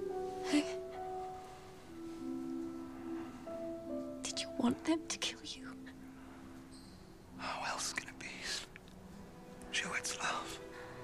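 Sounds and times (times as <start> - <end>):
faint steady low tones: 0.0 - 11.0
breathy whisper: 7.4 - 8.8, 9.7 - 11.0.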